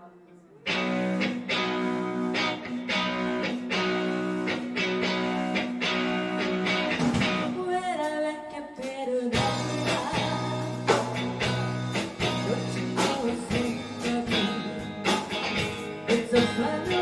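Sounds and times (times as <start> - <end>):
live rock band playing: 0.7 - 7.7, 9.4 - 17.0.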